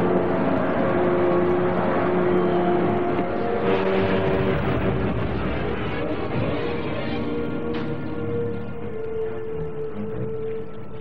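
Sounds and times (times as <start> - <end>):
motorboat engine running: 0.0 - 11.0.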